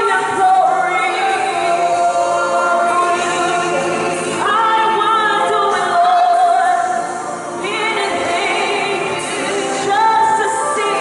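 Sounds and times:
women singing gospel song: 0.0 - 11.0.

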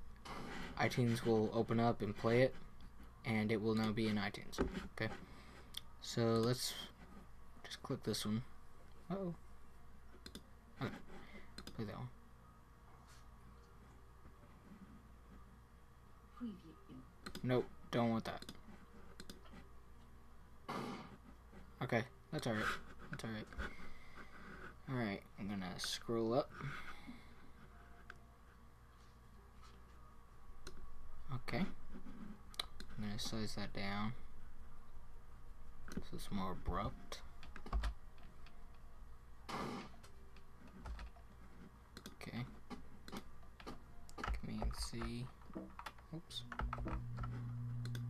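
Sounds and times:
computer mouse clicks: 10.2 - 10.4, 11.6 - 11.8, 17.2 - 17.5, 18.3 - 18.6, 19.2 - 19.5, 41.9 - 42.2
keyboard and mouse clicks: 10.2 - 10.4, 11.6 - 11.8, 17.2 - 17.5, 18.3 - 18.6, 19.2 - 19.5, 41.9 - 48.0.

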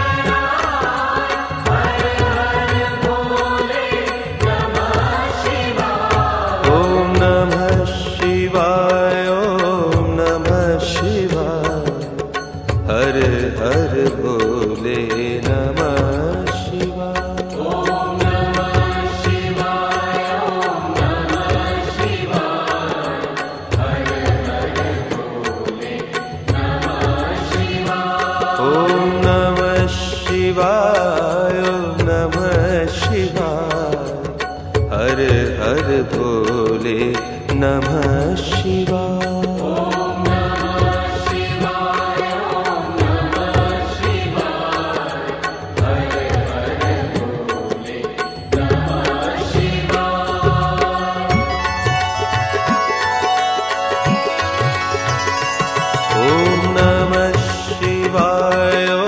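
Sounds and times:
person singing devotional song: 0.0 - 59.0.

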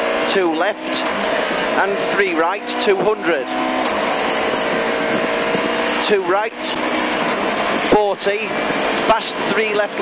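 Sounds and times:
car engine pulling hard: 0.0 - 10.0
road and tyre noise: 0.0 - 10.0.

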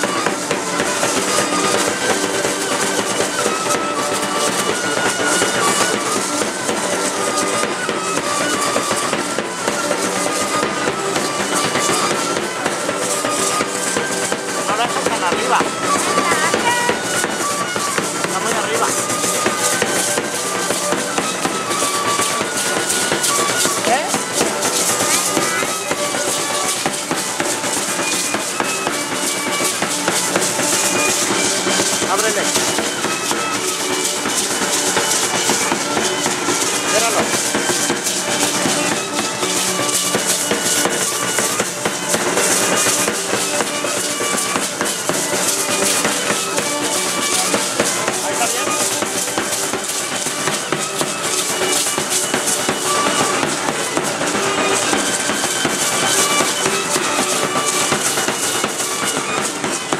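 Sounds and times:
melody over drum beat: 0.0 - 59.9
percussive shaking and clattering: 0.0 - 59.9.

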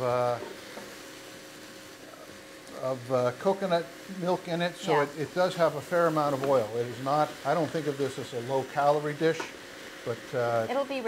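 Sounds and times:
vegetables sizzling in a pot: 0.0 - 11.0
man's voice: 4.2 - 9.4.

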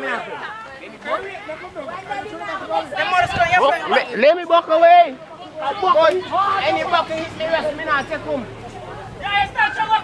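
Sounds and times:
teenage boys talking: 0.0 - 10.0.

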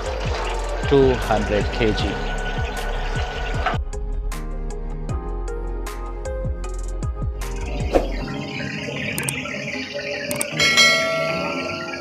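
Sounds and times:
bell-like ringing tones: 10.5 - 12.0.

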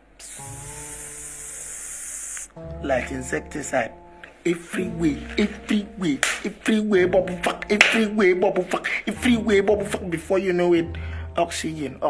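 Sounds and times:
long steady hiss: 0.0 - 2.6.

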